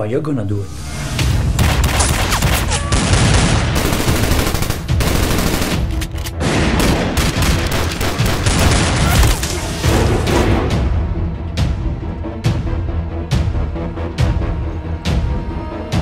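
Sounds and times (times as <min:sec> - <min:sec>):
rapid gunfire: 0:01.6 - 0:09.3.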